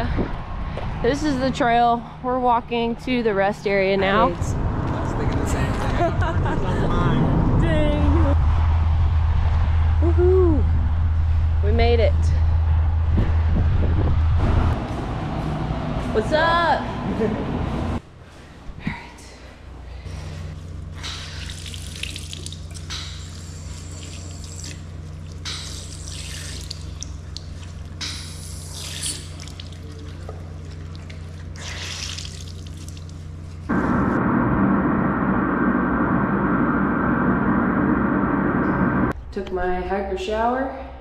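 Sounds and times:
steady low hum: 0.0s - 41.0s
loud steady rushing noise: 3.6s - 18.0s, 33.7s - 39.2s
faucet water splashing in sink: 21.0s - 33.2s
clothing scrubbed and wrung: 21.2s - 33.7s.

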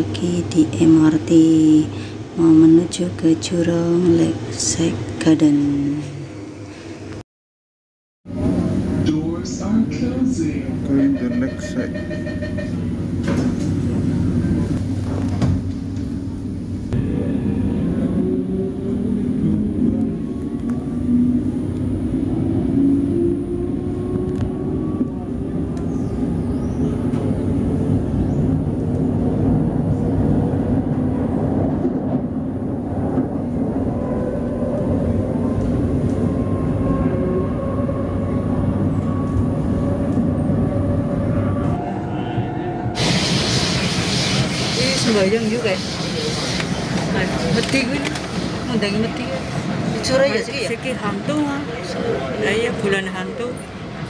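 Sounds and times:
train rumble inside carriage: 0.0s - 6.9s, 8.3s - 54.0s.

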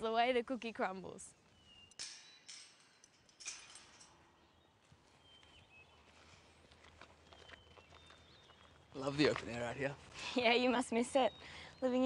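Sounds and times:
faint high bird chirps: 1.5s - 2.6s, 4.4s - 6.4s, 7.2s - 8.9s, 10.7s - 12.0s
footsteps on dry grass: 4.8s - 9.6s.

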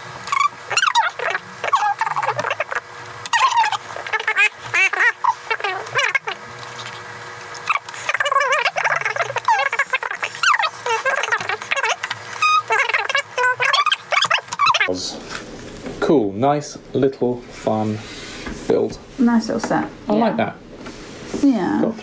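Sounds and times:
sped-up high-pitched chatter: 3.4s - 6.4s, 7.7s - 14.9s.

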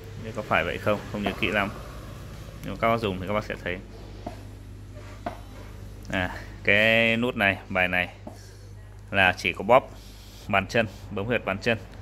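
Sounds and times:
foot massager motor humming: 0.0s - 12.0s.

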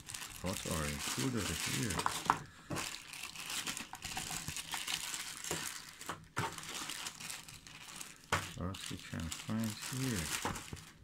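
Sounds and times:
plastic bags crinkling: 0.0s - 11.0s.

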